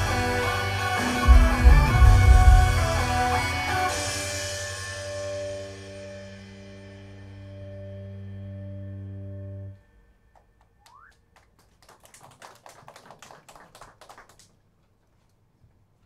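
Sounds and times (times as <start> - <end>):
pop song final chord: 0.0 - 5.9
scattered clapping: 10.3 - 14.6.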